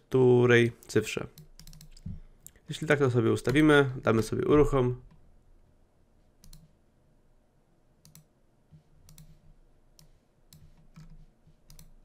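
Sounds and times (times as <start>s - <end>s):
computer mouse clicks: 0.8s - 2.6s, 6.4s - 6.7s, 8.0s - 8.3s, 9.0s - 9.4s, 10.0s - 12.0s.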